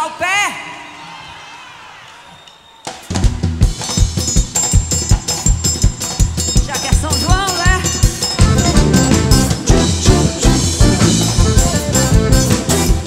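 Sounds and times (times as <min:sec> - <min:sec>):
drum kit dance beat: 0:02.9 - 0:13.0
live band playing: 0:02.9 - 0:13.0.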